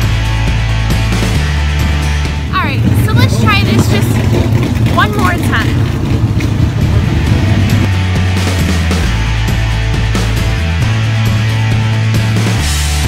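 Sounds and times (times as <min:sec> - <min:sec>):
race car engines rumbling: 0:00.0 - 0:12.7
music: 0:00.0 - 0:13.0.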